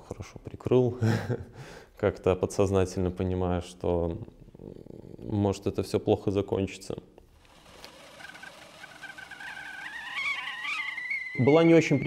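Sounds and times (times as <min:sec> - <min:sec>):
kettle whistle rising in pitch: 0:07.8 - 0:12.0.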